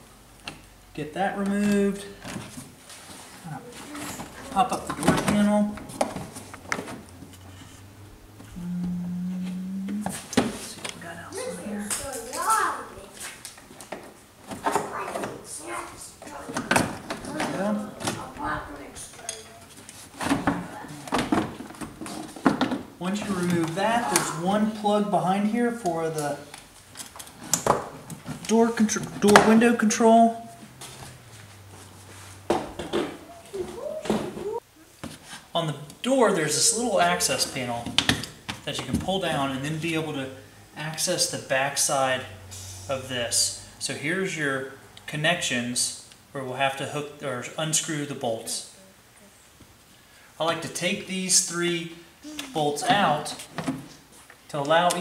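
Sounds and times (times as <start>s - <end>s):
person speaking: 8.5s - 13.2s, 23.0s - 26.5s, 28.5s - 30.6s, 50.4s - 53.5s.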